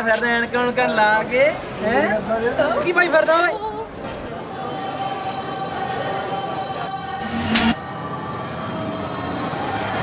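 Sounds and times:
high squealing tones drone: 4.4 - 10.0.

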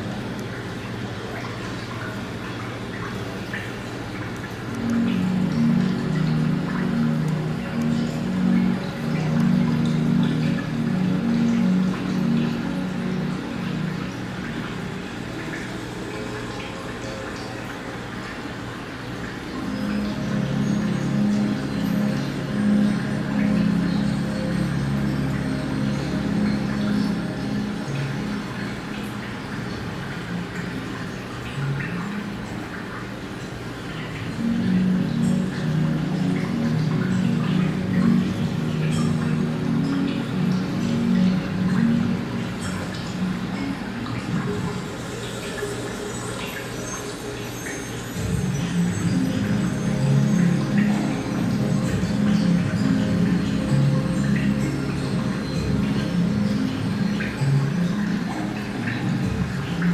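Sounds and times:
low steady hum: 0.0 - 59.9
soft music of long low notes: 0.0 - 59.9
water dripping into aquarium: 0.0 - 59.9.

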